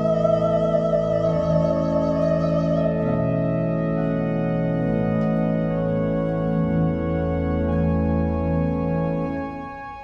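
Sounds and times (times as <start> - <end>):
pipe organ chords: 0.0 - 10.0.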